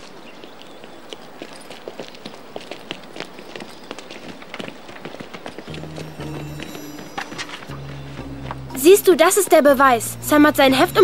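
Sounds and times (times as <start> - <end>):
children running footsteps: 0.0 - 9.9
low background music: 5.7 - 11.0.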